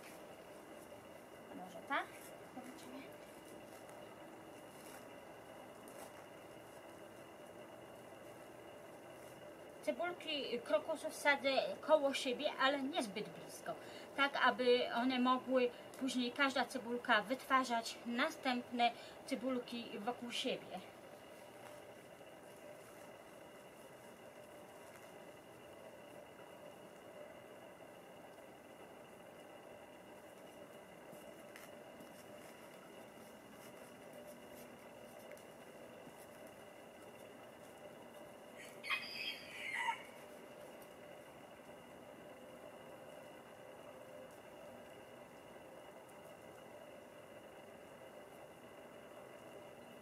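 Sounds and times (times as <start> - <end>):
rooster crowing: 38.6 - 40.2.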